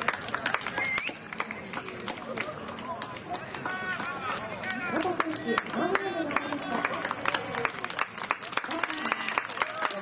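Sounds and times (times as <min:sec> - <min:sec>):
crowd clapping: 0:00.0 - 0:10.0
open-air stadium ambience: 0:00.0 - 0:10.0.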